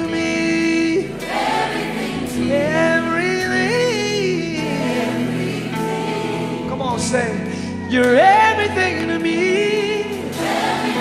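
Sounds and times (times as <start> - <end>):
gospel choir singing: 0.0 - 11.0.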